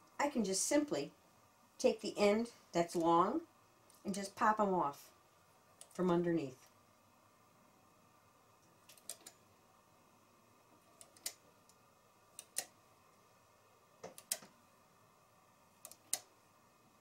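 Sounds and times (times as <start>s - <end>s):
knitting machine needle clicks: 8.6s - 9.4s, 10.9s - 12.8s, 14.0s - 14.6s, 15.8s - 16.3s.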